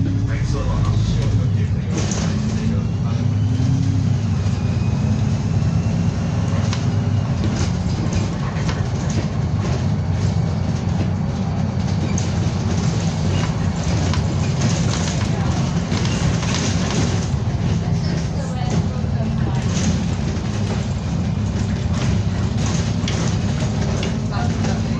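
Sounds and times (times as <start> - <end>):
bus engine running: 0.0 - 24.9.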